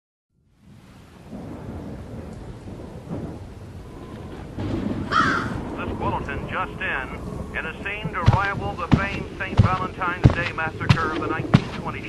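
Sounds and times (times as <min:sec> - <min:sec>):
rain: 0:00.3 - 0:12.0
rolling thunder: 0:00.5 - 0:12.0.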